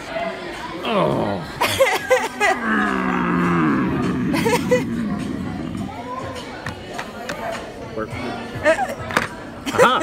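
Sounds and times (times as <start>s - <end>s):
person making wavering vocal sounds: 2.5s - 6.0s
person making low drawn-out vocal sound: 2.6s - 6.0s.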